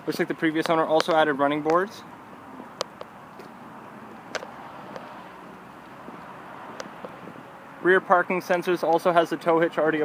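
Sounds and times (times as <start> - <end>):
distant traffic hiss: 0.0 - 9.7.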